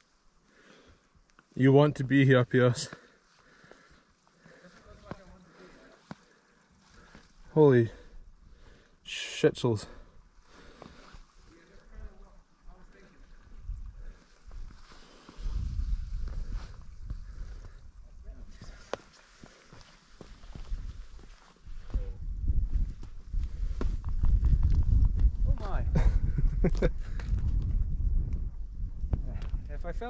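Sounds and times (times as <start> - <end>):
footsteps on rock: 4.8 - 7.4, 18.5 - 25.7
wind buffeting microphone: 13.5 - 14.8, 15.4 - 18.7, 20.4 - 30.0.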